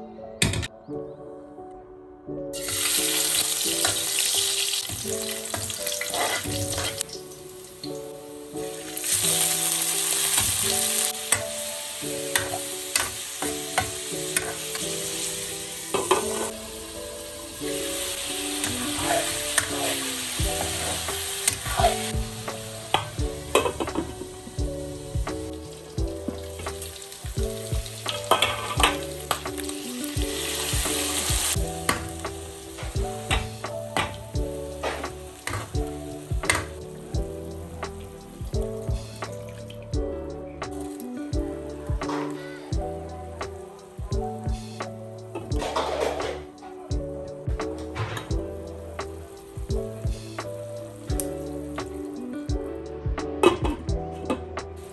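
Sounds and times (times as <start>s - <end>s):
soft background music: 0.0s - 54.9s
meat sizzling in a wok: 2.6s - 39.3s
metal spatula scraping a pan: 6.0s - 7.0s, 28.2s - 29.0s, 45.6s - 46.5s.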